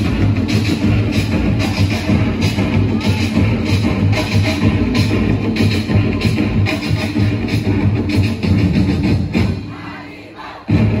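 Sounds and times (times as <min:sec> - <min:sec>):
drum band playing a beat: 0:00.0 - 0:10.0, 0:10.6 - 0:11.0
crowd voices: 0:00.0 - 0:11.0.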